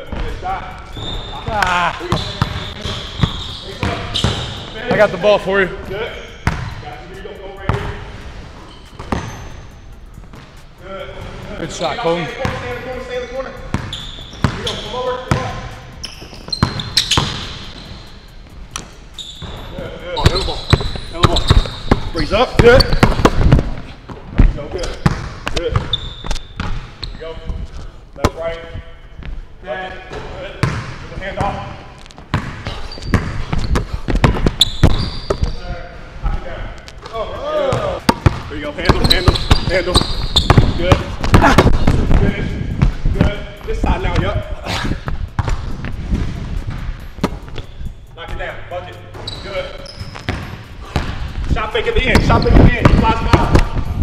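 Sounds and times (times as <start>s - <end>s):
basketball bouncing on wooden floor: 20.2s - 26.0s, 32.3s - 35.5s, 37.7s - 43.3s, 45.4s - 45.9s.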